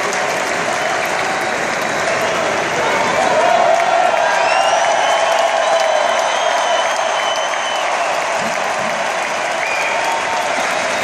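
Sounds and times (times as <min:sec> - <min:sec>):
stadium crowd applauding and cheering: 0:00.0 - 0:11.0.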